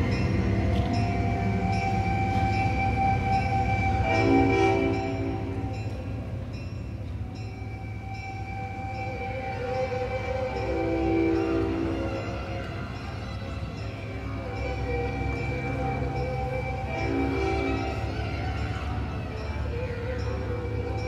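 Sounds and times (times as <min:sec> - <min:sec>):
ensemble sustained horn-like chords: 0:00.0 - 0:21.0.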